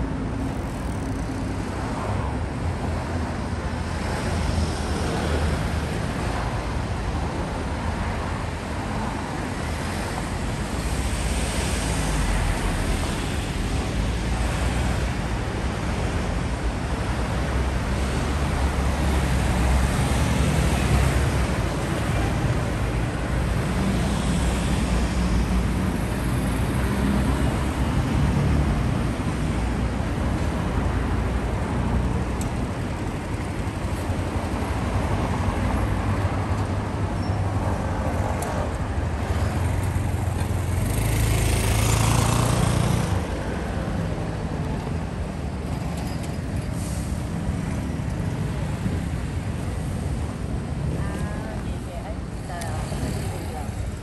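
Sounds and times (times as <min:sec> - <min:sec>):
traffic driving past: 0:00.0 - 0:54.0.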